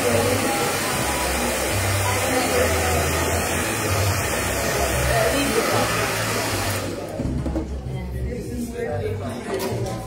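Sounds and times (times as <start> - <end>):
hair dryer blowing: 0.0 - 7.1.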